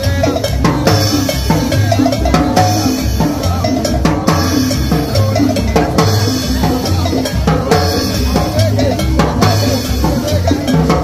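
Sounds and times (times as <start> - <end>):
congas and drum kit beat: 0.0 - 11.0
latin street band playing: 0.0 - 11.0.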